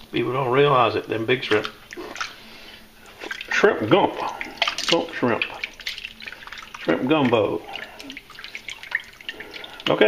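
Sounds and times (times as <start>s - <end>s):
water splashing and dripping: 1.4s - 10.0s.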